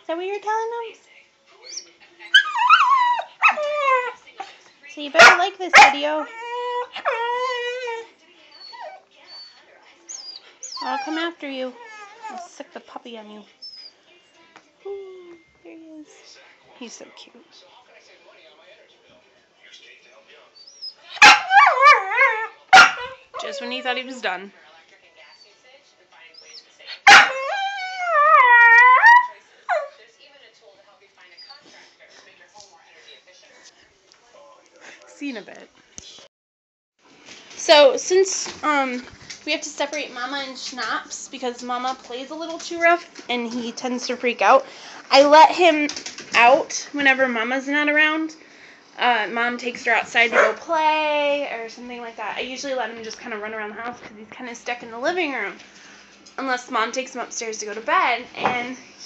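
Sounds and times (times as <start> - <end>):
puppy howling: 2.3 - 4.2, 5.2 - 9.0, 20.7 - 23.8, 27.0 - 29.9
puppy high calls: 20.7 - 23.5.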